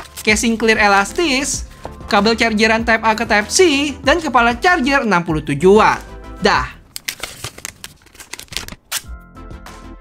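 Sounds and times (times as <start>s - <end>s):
plastic film crinkling: 6.8s - 9.1s.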